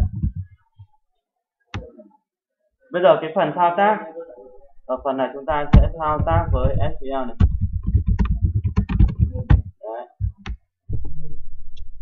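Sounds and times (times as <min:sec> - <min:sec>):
fast typing on computer keyboard: 0:07.4 - 0:09.7.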